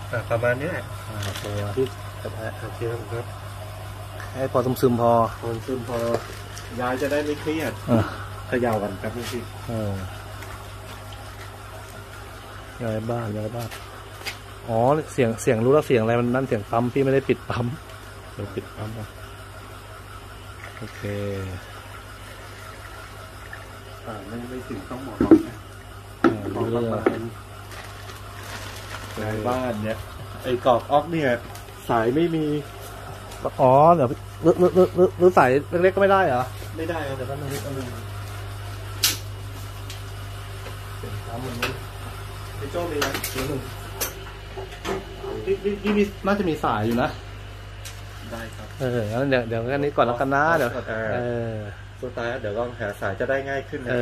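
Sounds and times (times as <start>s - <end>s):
aquarium pump humming: 0.0s - 54.0s
moving water: 1.2s - 13.1s, 20.5s - 29.3s.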